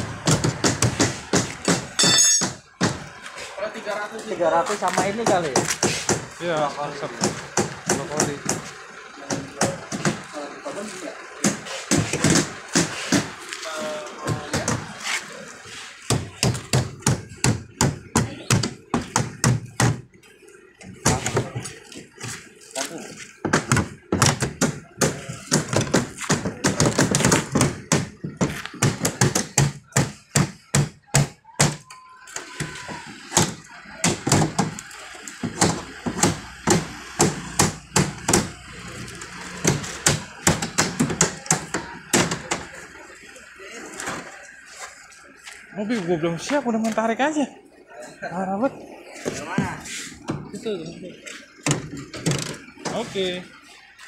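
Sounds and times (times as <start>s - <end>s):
people talking: 3.3s - 19.2s, 20.8s - 30.0s, 31.0s - 36.6s, 38.2s - 53.7s.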